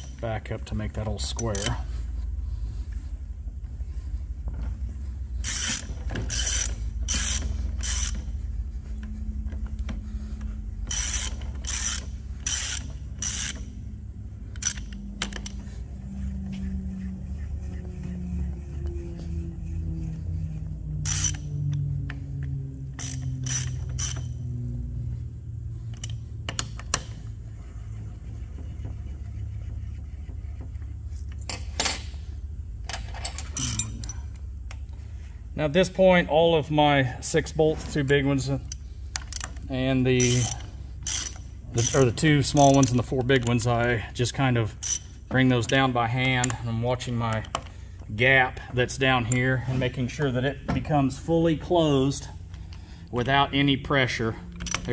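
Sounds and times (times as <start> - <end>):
steady low hum: 0.0 - 54.9
socket ratchet clicking: 5.4 - 8.3, 10.9 - 13.8, 14.5 - 15.6, 21.0 - 21.9, 22.9 - 24.5, 33.2 - 34.8, 38.6 - 39.6, 40.2 - 43.6.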